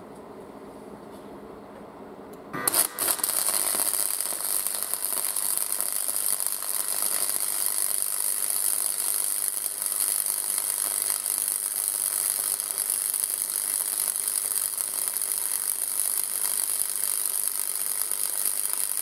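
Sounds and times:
welding arc crackling: 0:02.5 - 0:19.0.

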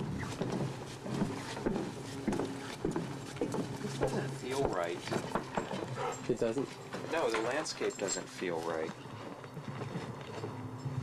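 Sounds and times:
footsteps on wooden boardwalk: 0:00.0 - 0:11.0
steady low hum: 0:00.0 - 0:11.0.

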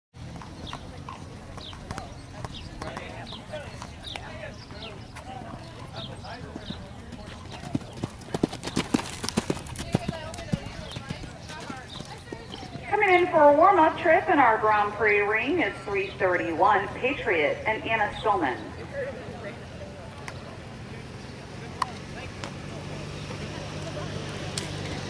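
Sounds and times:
horse hoofbeats on sand: 0:00.2 - 0:13.3
faint voices talking: 0:00.2 - 0:25.0.

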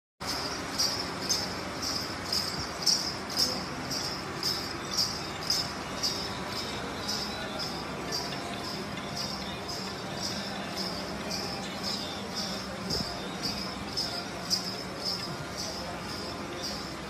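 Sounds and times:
crowd murmur: 0:00.2 - 0:17.0
jingling metal percussion: 0:00.2 - 0:17.0.

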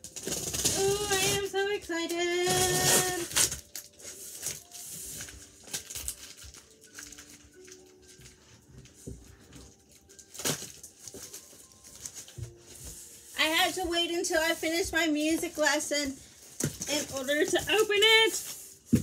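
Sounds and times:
scissors cutting cardboard and tape: 0:00.0 - 0:01.6, 0:02.2 - 0:03.8.

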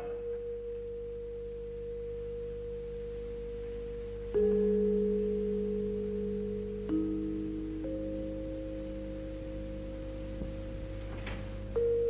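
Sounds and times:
faint background hiss: 0:00.0 - 0:12.0
steady pure tone: 0:00.0 - 0:12.0.

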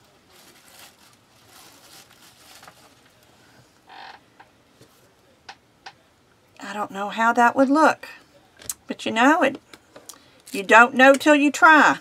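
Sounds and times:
soft rustling: 0:00.0 - 0:04.0.

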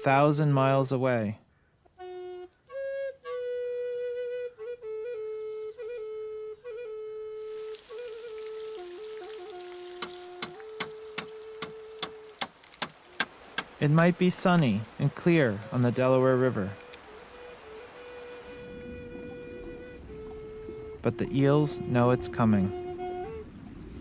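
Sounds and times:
solo flute melody: 0:01.9 - 0:13.2, 0:15.4 - 0:24.0
soft hiss: 0:07.3 - 0:21.0
sharp ticks: 0:10.0 - 0:13.7.

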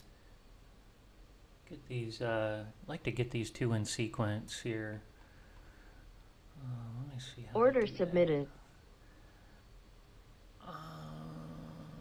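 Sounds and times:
faint room tone: 0:00.0 - 0:12.0
man's long hesitant uhhh: 0:10.6 - 0:12.0.

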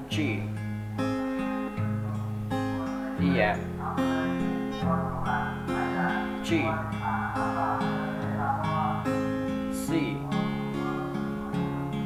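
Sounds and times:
fingerpicked acoustic guitar: 0:00.0 - 0:12.0.

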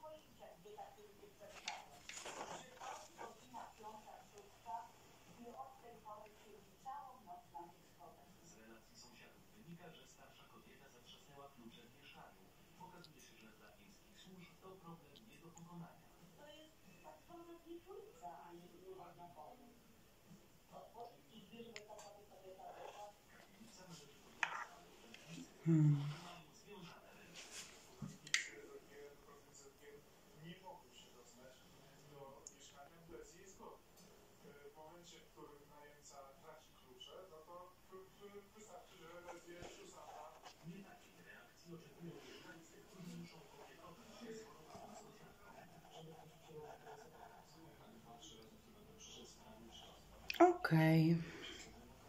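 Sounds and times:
faint background speech: 0:00.0 - 0:52.0
paper towel rustling: 0:01.6 - 0:03.7.

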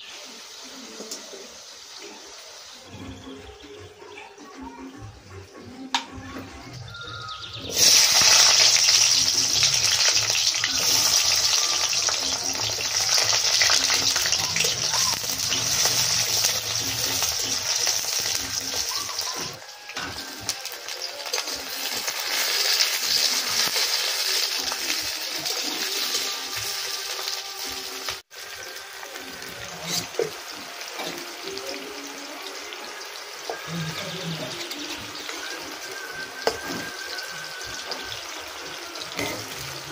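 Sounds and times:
onions sizzling in hot oil: 0:00.0 - 0:03.2, 0:07.6 - 0:39.9.

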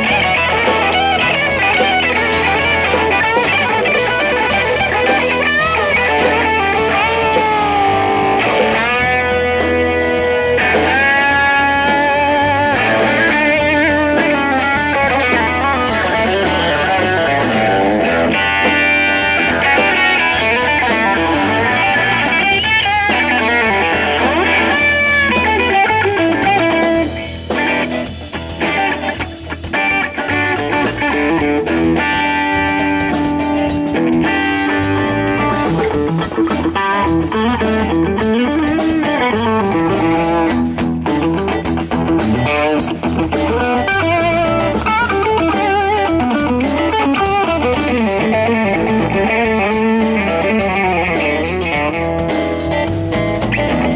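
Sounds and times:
drums: 0:00.0 - 0:53.9
electric guitar lead line: 0:00.0 - 0:53.9.

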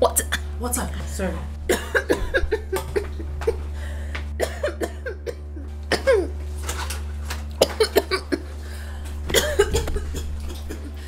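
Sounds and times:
woman coughing: 0:01.7 - 0:03.6, 0:04.4 - 0:06.3, 0:07.6 - 0:08.4, 0:09.3 - 0:11.0.

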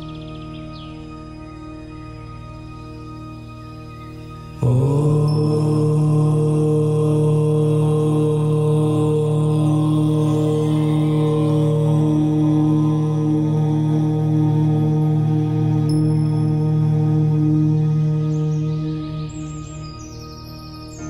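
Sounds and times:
ambient music drone: 0:00.0 - 0:21.0
deep voice chanting om: 0:04.5 - 0:21.0.

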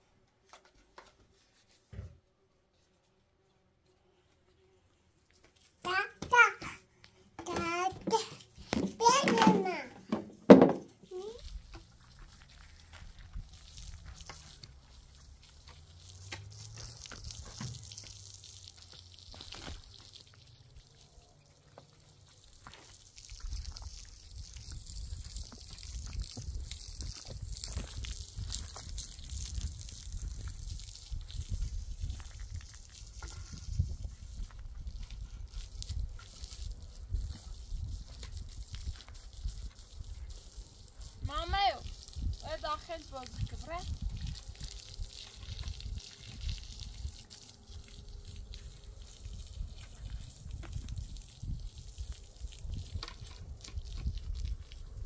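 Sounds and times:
hose water splashing on concrete: 0:05.2 - 0:55.0.

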